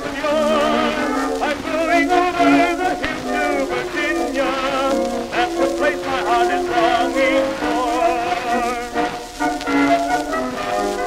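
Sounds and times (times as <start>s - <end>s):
old orchestral record playing: 0.0s - 11.0s.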